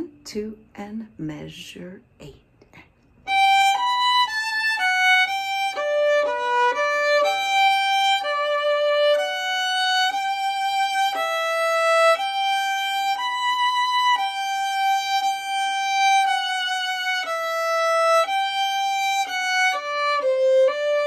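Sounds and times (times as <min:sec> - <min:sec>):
solo violin bowing sustained notes: 0:03.3 - 0:21.0.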